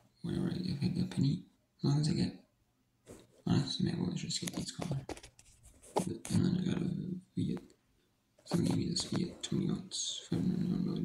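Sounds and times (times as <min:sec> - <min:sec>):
man speaking indistinctly: 0:00.2 - 0:02.4, 0:03.4 - 0:05.1, 0:06.0 - 0:07.7, 0:08.5 - 0:11.0.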